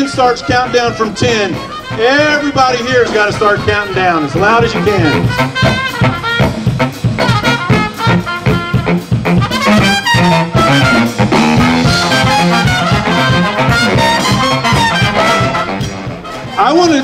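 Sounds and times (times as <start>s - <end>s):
brass band playing upbeat music: 0.0s - 17.0s.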